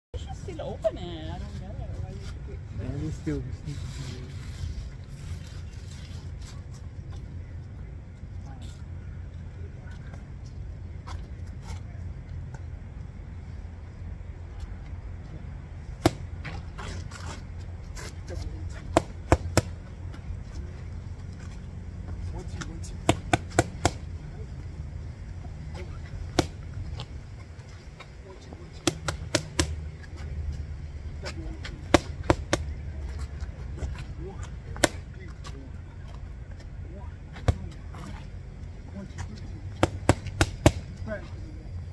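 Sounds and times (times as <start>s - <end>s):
steady low rumble: 0.1s - 41.9s
boxing gloves slapping mitts: 16.0s - 16.3s, 18.8s - 19.8s, 23.0s - 24.0s, 25.8s - 26.7s, 28.8s - 29.8s, 31.8s - 32.8s, 34.8s - 35.1s, 39.7s - 41.0s.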